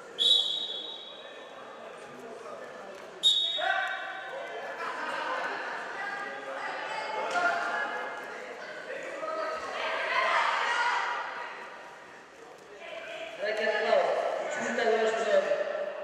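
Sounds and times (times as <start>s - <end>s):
people shouting in echoing hall: 9.2s - 11.6s.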